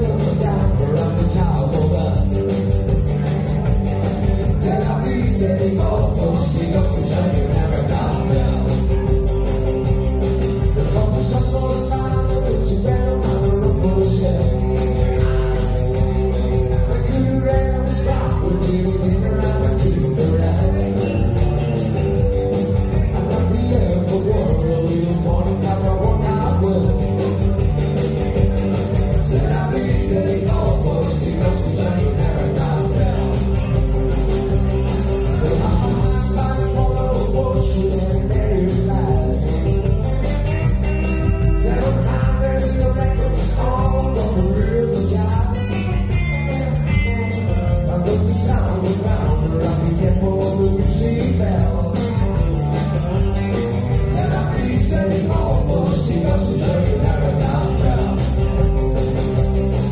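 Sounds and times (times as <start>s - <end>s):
man singing lead vocal: 0.0s - 3.3s, 4.0s - 9.4s, 10.3s - 34.4s, 35.1s - 59.9s
rockabilly band playing: 0.0s - 59.9s.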